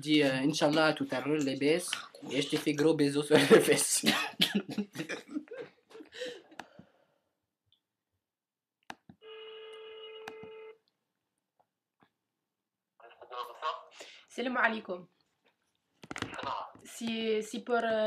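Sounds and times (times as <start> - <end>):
telephone ringback tone: 9.2 - 10.8.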